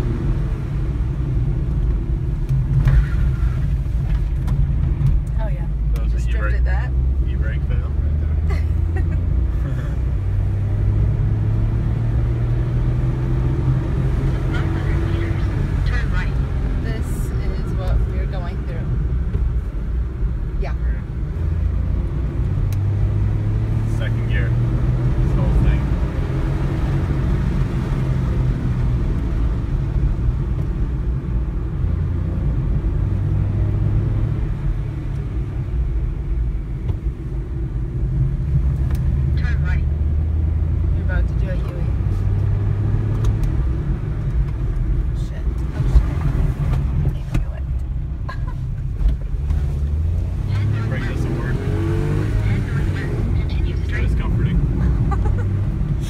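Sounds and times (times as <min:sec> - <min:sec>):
car engine revving: 0:00.0 - 0:56.0
road noise inside car: 0:00.0 - 0:56.0.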